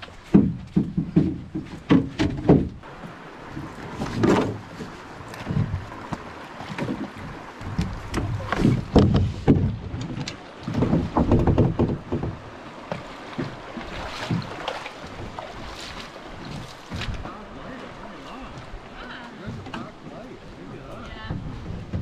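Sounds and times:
hollow knocks on canoe hull: 0.3 - 2.9, 3.6 - 17.3, 21.1 - 22.0
water splashing in shallows: 2.8 - 22.0.

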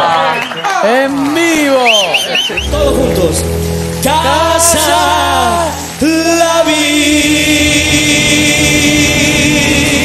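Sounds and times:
guitar and band accompaniment: 0.6 - 10.0
person singing long note: 2.7 - 7.8.

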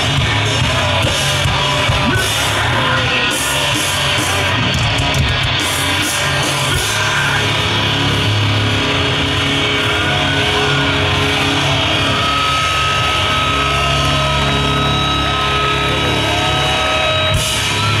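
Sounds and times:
metalcore band playing live: 0.0 - 18.0.

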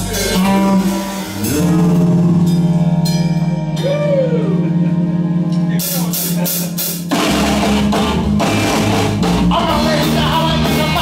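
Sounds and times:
guitar note bending: 0.0 - 11.0
rock band playing: 0.0 - 11.0.

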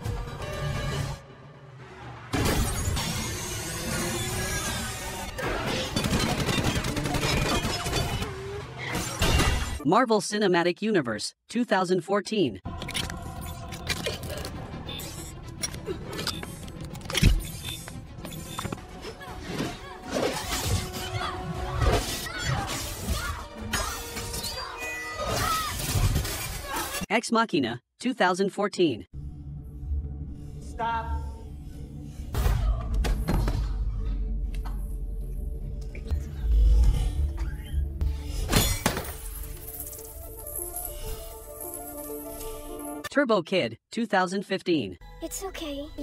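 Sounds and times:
fight scene music: 0.0 - 10.2, 11.8 - 27.1, 28.2 - 40.5.

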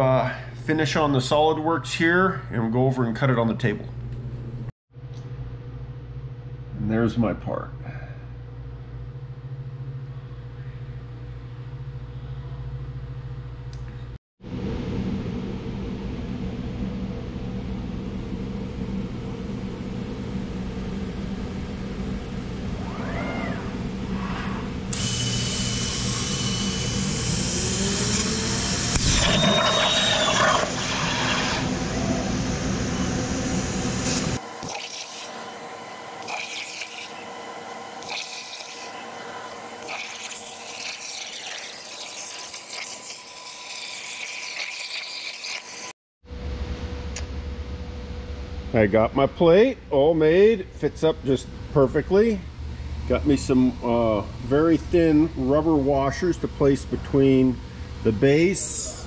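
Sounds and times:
machine hum: 3.7 - 41.4, 46.2 - 59.0
plasma arc hissing: 36.2 - 37.2, 38.0 - 39.0.

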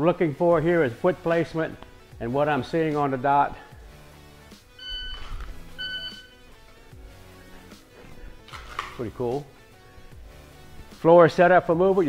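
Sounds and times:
background music: 0.0 - 12.0
shot timer beeping: 4.8 - 6.4.

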